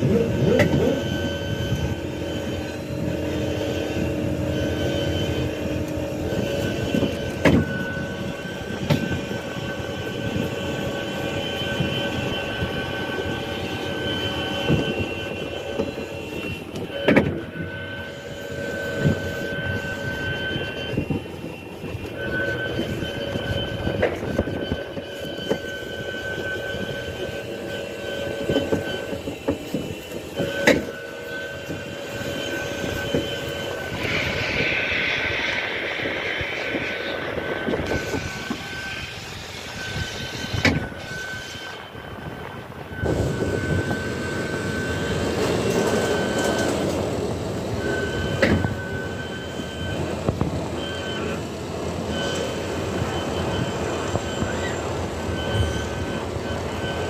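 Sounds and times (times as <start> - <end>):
ride car rumbling on rail: 0.0 - 57.0
thin high whine: 0.0 - 57.0.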